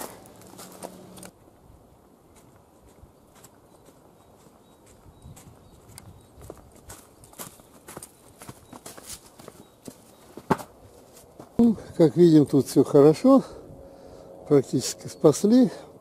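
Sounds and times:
footsteps on garden path: 0:00.0 - 0:11.8.

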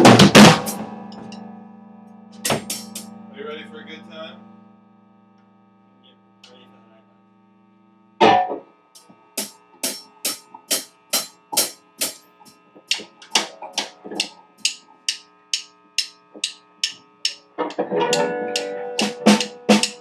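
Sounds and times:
drum kit with cymbal strikes: 0:00.0 - 0:01.5, 0:02.3 - 0:03.2, 0:08.2 - 0:20.0
electric guitar: 0:00.0 - 0:07.6, 0:08.2 - 0:09.2, 0:17.5 - 0:20.0
amplifier hum: 0:00.0 - 0:20.0
crash cymbal hit: 0:02.4 - 0:03.1.

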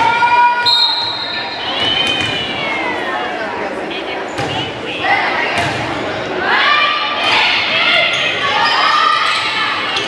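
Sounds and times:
people cheering in a gym: 0:00.0 - 0:10.0
referee's whistle: 0:00.6 - 0:02.6.

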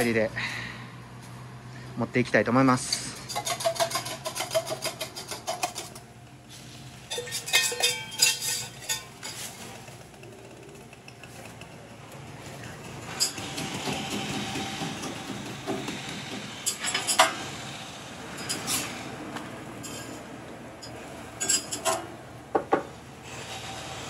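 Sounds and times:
metal clinking on griddle: 0:02.9 - 0:06.0, 0:07.0 - 0:10.0, 0:19.8 - 0:22.1
spatula scraping griddle: 0:03.0 - 0:10.1.

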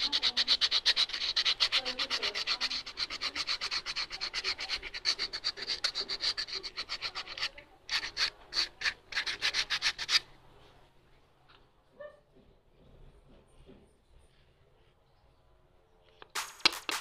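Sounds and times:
sanding block scratching leather: 0:00.0 - 0:10.3.

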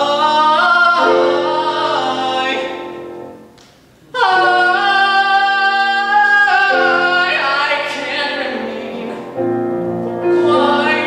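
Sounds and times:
man singing: 0:00.0 - 0:03.4, 0:04.0 - 0:11.0
piano accompaniment: 0:00.0 - 0:11.0.

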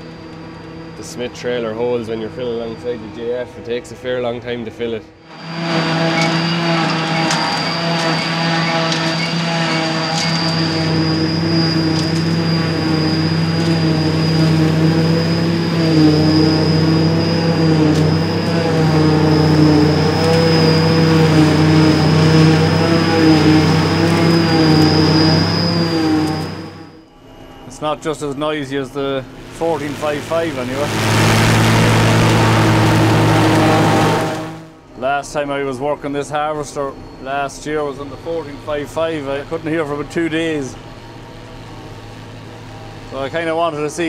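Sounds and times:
forage harvester whine: 0:00.0 - 0:44.0
tractor engine drone: 0:00.0 - 0:44.0.

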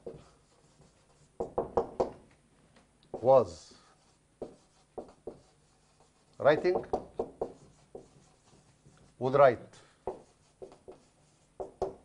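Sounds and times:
marker tip knocking on whiteboard: 0:01.4 - 0:02.2, 0:04.4 - 0:05.4, 0:06.4 - 0:08.2, 0:10.1 - 0:12.0.

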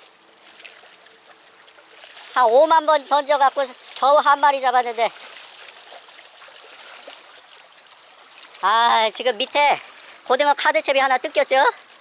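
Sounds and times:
sea water lapping against rocks: 0:00.0 - 0:12.0.

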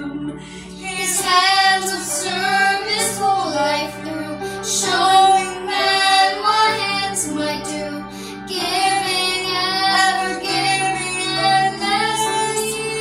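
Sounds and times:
girl singing: 0:00.0 - 0:13.0.

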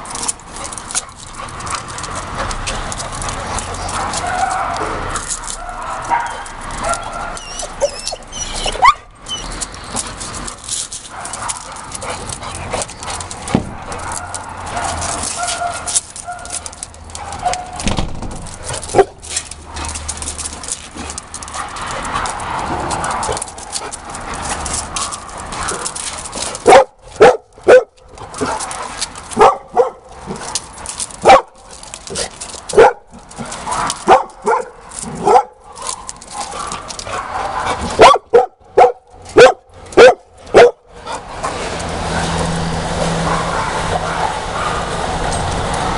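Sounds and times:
dogs barking: 0:00.6 - 0:09.6, 0:11.0 - 0:17.9, 0:18.6 - 0:45.4.

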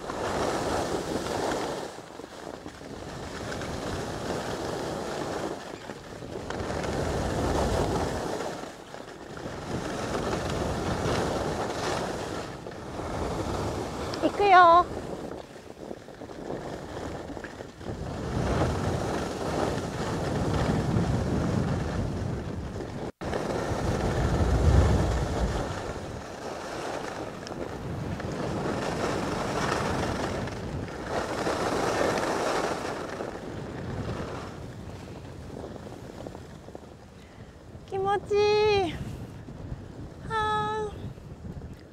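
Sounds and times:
skis sliding over packed snow: 0:00.0 - 0:40.2
wind rushing over microphone: 0:00.0 - 0:41.9.

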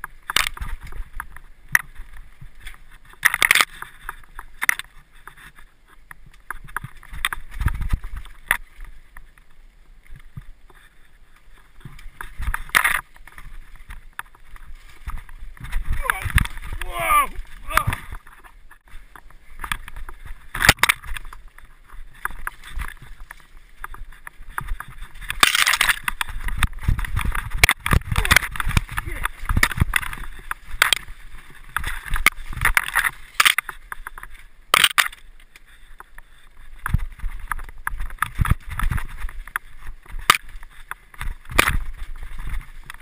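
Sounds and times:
mountain bike rattling: 0:00.0 - 0:43.0
wheels knocking on rocks: 0:00.0 - 0:43.0.

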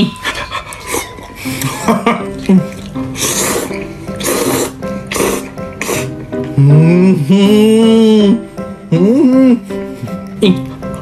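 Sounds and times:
background music: 0:00.0 - 0:11.0
person slurping noodles: 0:02.5 - 0:06.2.

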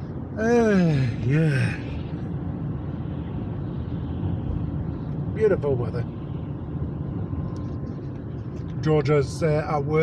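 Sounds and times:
car engine rumble: 0:00.0 - 0:10.0.

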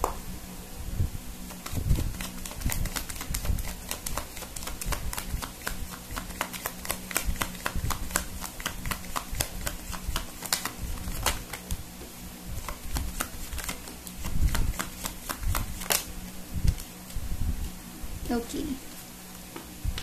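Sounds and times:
cards being shuffled: 0:01.5 - 0:11.8, 0:12.6 - 0:17.2.

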